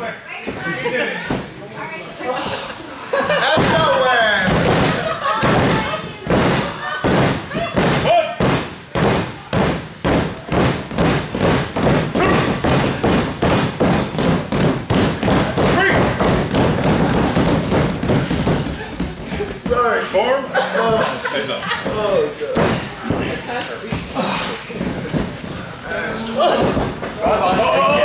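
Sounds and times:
hands slapping a mat: 3.4 - 19.8
people shouting: 12.1 - 13.2, 15.4 - 17.4, 25.9 - 28.0.

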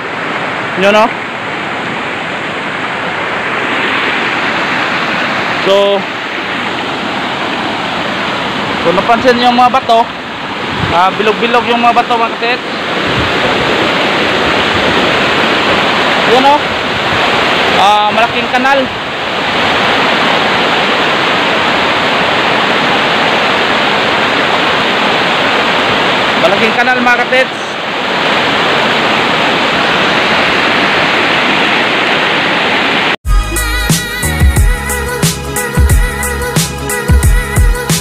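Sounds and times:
white water rushing over rocks: 0.0 - 33.2
music with a beat: 33.3 - 38.0.

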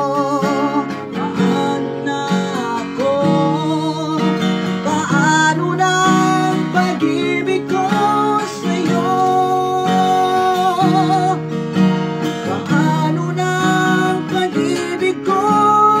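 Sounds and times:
acoustic guitar strumming: 0.0 - 16.0
man singing with vibrato: 0.0 - 16.0.

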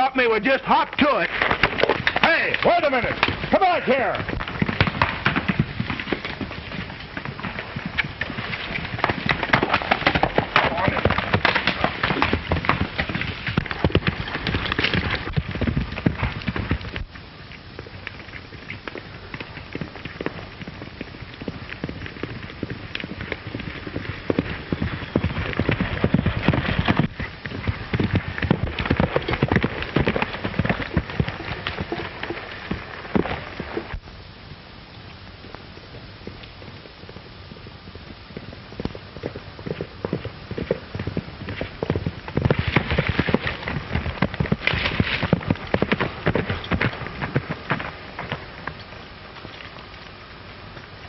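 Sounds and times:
horse hoofbeats galloping: 0.0 - 34.1, 35.0 - 51.0.

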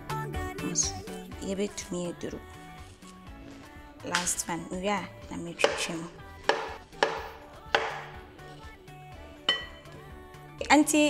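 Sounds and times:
background music: 0.0 - 11.0
knife chopping on wooden board: 5.6 - 8.3.

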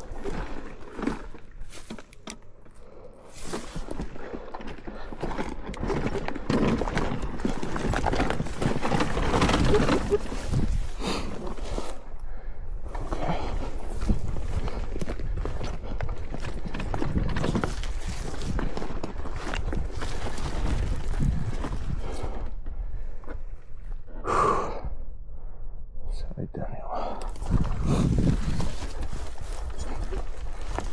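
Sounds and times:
breathy gust: 24.2 - 25.0.

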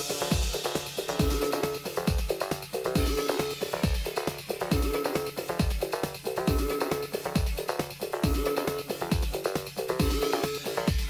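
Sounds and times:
kick drum: 0.0 - 11.0.

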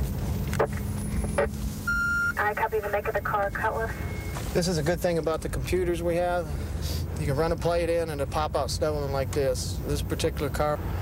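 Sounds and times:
car engine and road rumble: 0.0 - 11.0
radio crackles: 0.5 - 4.5
radio beep: 1.3 - 4.6.

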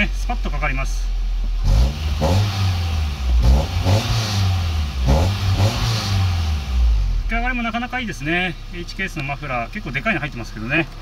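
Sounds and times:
car engine revving: 0.0 - 11.0.

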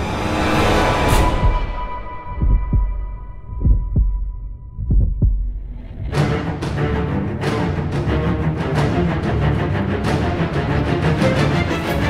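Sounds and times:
heartbeat thumps: 1.2 - 7.1.

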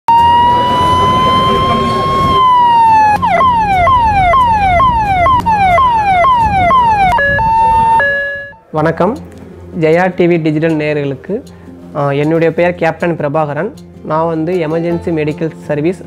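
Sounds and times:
ambulance siren wailing and yelping: 0.1 - 8.6
road traffic noise: 0.1 - 9.8.

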